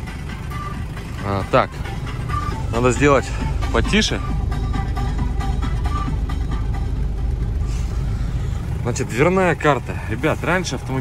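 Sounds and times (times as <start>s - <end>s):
music from car stereo: 0.0s - 9.6s
car engine idling: 0.0s - 11.0s.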